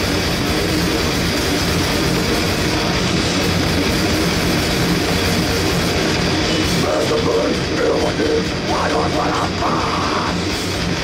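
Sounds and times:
bass guitar: 0.0 - 11.0
distorted electric guitars: 0.0 - 11.0
drums: 0.0 - 11.0.

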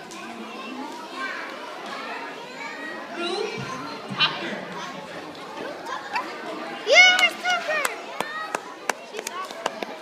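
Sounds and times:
children chattering: 0.0 - 10.0
loud high child's voice: 6.8 - 8.4.

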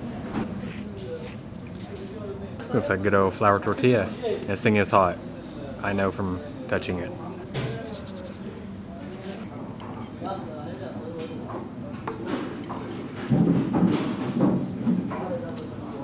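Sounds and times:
indistinct background talking: 0.0 - 13.4.

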